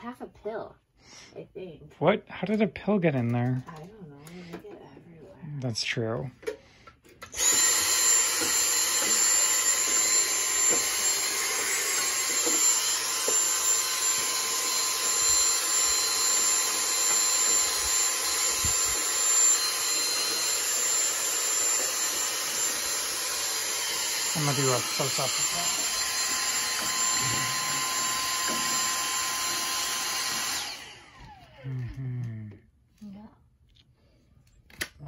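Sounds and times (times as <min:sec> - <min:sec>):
vacuum cleaner motor whine: 0:07.2 - 0:32.0.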